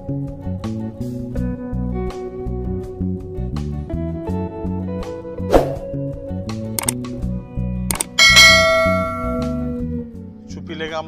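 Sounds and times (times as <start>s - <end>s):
background guitar music: 0.0s - 11.0s
mouse clicks: 7.9s - 8.2s
loud bell ding: 8.0s - 9.8s.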